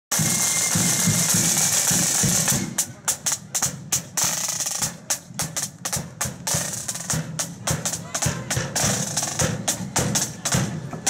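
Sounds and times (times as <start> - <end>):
snare drum roll: 0.1 - 11.0
steady low drum beat: 0.1 - 11.0.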